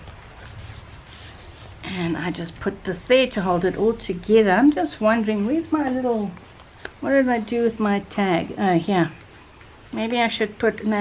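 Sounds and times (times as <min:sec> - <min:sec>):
paper rustling and rubbing: 0:00.0 - 0:04.1.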